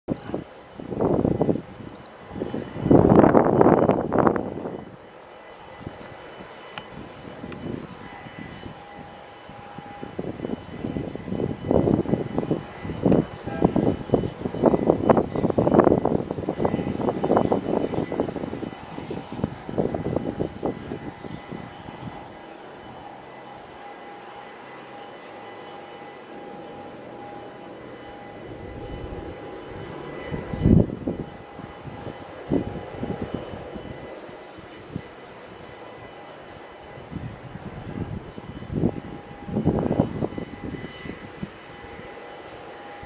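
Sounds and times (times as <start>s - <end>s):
distant jet airliner whine: 0.1s - 43.0s
wind gusts: 0.1s - 43.0s.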